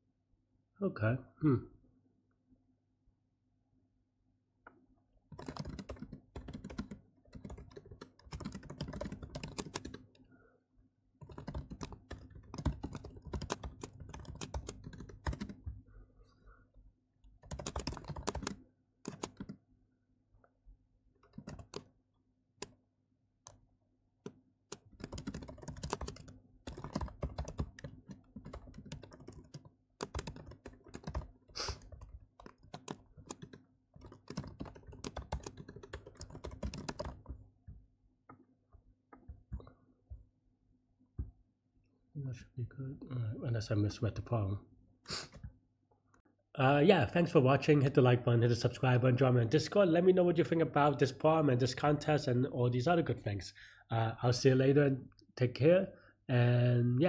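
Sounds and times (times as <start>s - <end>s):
typing on computer keyboard: 5.3s - 10.2s, 11.2s - 15.8s, 17.4s - 19.6s, 21.2s - 21.9s, 24.2s - 37.4s.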